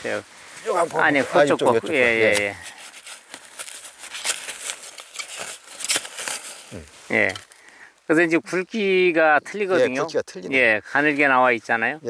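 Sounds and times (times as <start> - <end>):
plastic mulch and soil crackling: 0.0 - 9.2.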